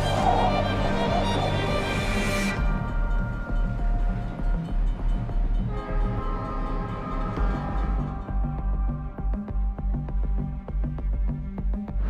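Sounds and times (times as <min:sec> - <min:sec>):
train passing close by: 0:00.0 - 0:08.3
music with low beat: 0:00.0 - 0:12.0.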